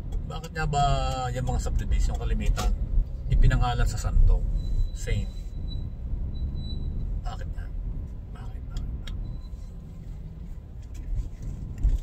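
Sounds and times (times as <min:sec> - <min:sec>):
car engine rumble and road noise: 0:00.0 - 0:12.0.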